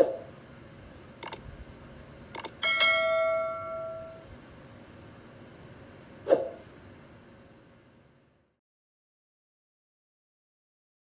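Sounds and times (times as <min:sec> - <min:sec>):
mouse clicks: 0:01.2 - 0:01.4, 0:02.3 - 0:02.6
bright bell ding: 0:02.6 - 0:04.2.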